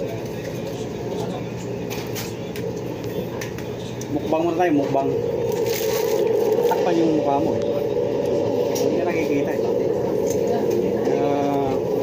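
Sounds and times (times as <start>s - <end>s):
steady room hum: 0.0s - 12.0s.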